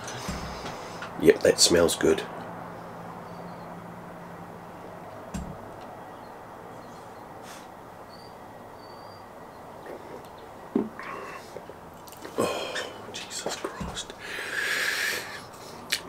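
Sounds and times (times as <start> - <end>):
room noise: 0.0 - 16.0
soft thump: 0.3 - 0.8.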